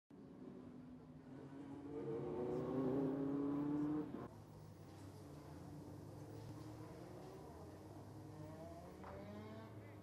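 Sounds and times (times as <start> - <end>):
racing cars at high revs: 0.3 - 4.3, 7.0 - 10.0.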